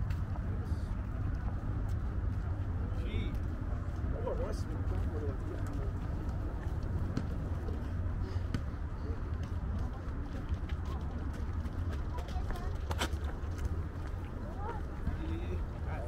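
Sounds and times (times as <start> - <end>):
indistinct chatter: 0.0 - 16.0
steady low rumble: 0.0 - 16.0.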